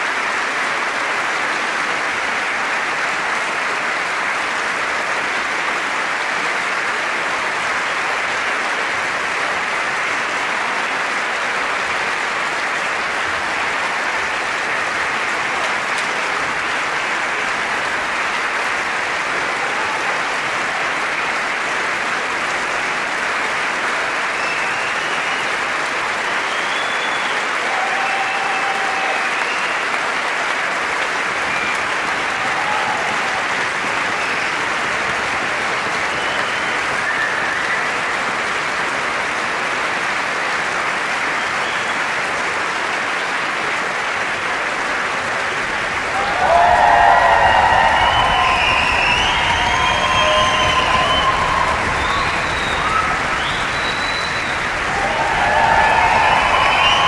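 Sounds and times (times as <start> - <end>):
audience applause: 0.0 - 57.0.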